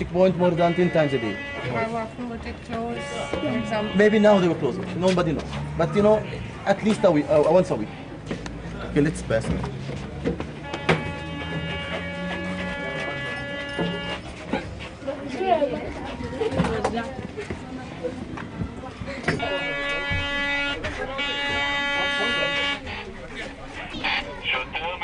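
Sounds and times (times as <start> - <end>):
voices: 0.0 - 25.0
electric buzzer: 10.6 - 14.2.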